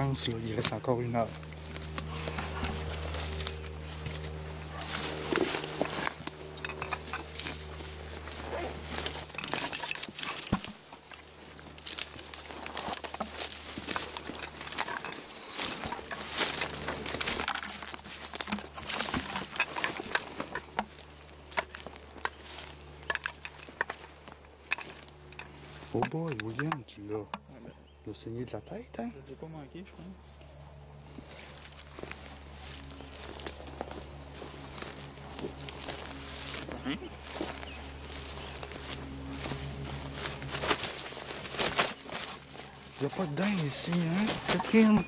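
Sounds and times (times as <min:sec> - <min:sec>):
footsteps crunching through brush: 0:00.0 - 0:26.6, 0:29.2 - 0:45.0
twigs rustling against clothing: 0:00.0 - 0:26.8, 0:30.0 - 0:45.0.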